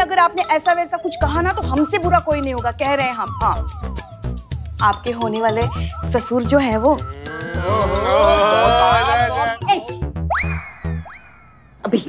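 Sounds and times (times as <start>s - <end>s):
background music: 0.0s - 12.0s
sharp drum beats: 1.2s - 10.2s.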